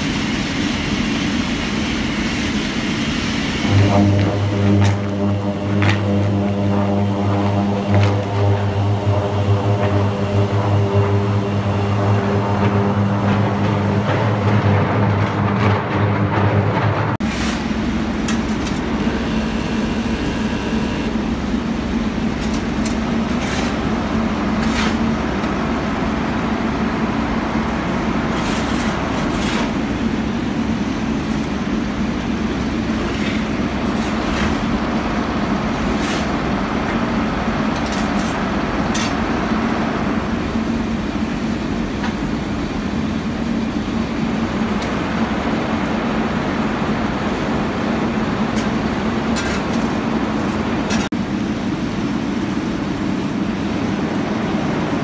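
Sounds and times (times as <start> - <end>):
furnace buzzing hum: 0.0 - 55.0
steelworks roar: 0.0 - 55.0.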